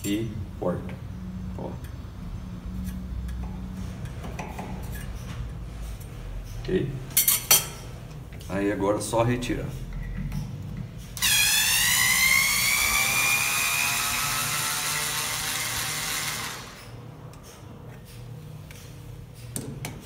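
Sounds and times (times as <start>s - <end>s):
electric screwdriver motor whine: 11.2s - 16.8s.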